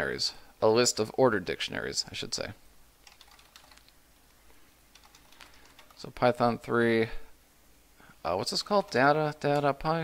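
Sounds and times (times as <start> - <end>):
computer keyboard keystrokes: 3.0 - 4.0, 4.9 - 6.0.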